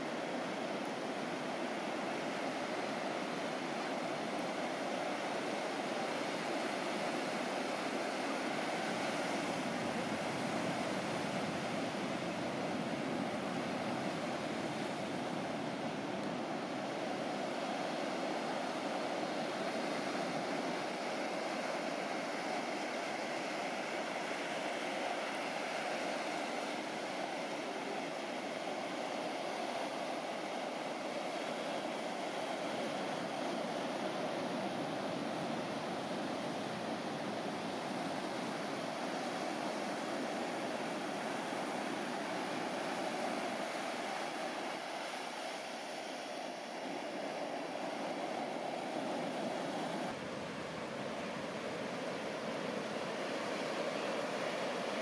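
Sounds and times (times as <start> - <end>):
ocean waves breaking: 0.0 - 55.0.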